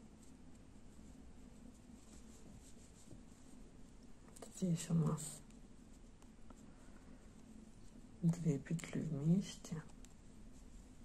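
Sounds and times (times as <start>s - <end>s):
fingers rustling yarn: 0.0s - 11.0s.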